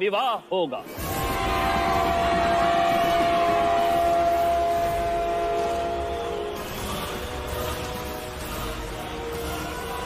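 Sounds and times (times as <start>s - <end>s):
horn blast: 0.9s - 10.0s
large drum rumbling: 1.0s - 6.4s.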